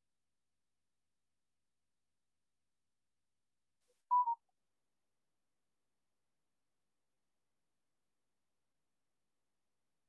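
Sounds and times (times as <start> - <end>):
short electronic beep: 4.1 - 4.4.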